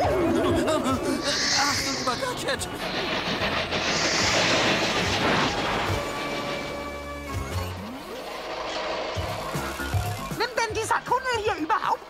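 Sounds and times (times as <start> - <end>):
cartoon crash: 1.2 - 6.8.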